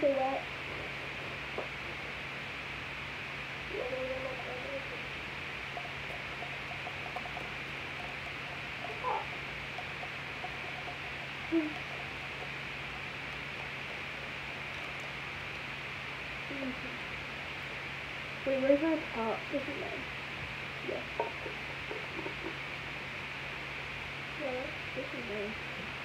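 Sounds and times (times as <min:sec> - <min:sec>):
background hiss: 0:00.0 - 0:26.0
faint voice sounds: 0:03.7 - 0:05.1.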